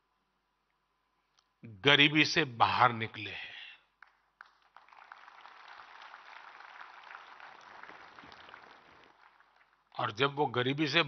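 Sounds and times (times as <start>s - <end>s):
audience applauding: 4.0s - 9.9s.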